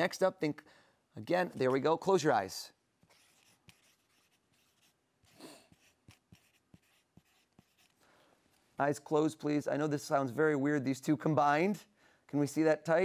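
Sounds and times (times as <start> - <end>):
pen scratching on paper: 3.0 - 8.0.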